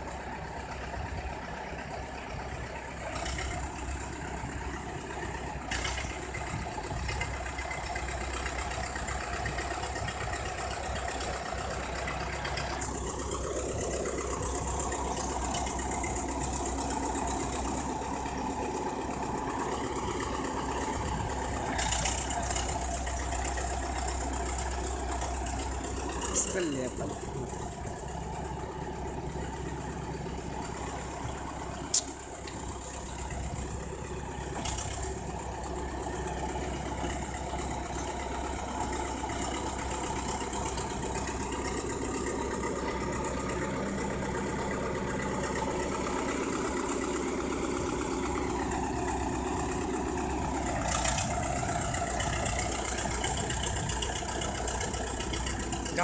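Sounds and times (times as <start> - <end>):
bulldozer diesel engine running: 0.0 - 56.0
sharp click: 31.9 - 32.1.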